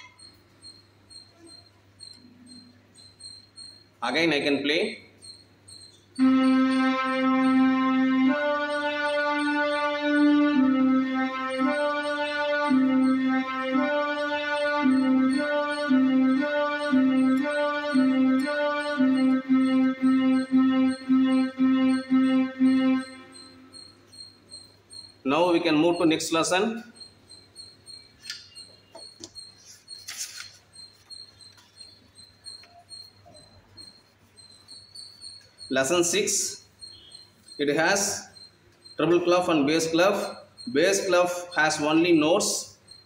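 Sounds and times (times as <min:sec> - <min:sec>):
metronome ticking: 0:05.2 - 0:29.6
electronic keyboard melody: 0:06.2 - 0:26.3.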